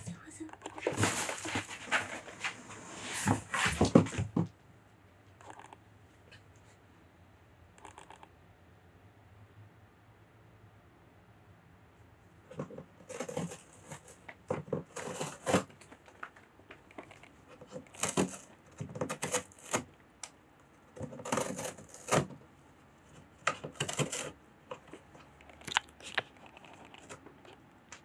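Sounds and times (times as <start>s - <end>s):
cat claws scratching cardboard: 12.5s - 16.3s, 16.9s - 19.9s, 20.9s - 22.4s, 23.1s - 27.6s.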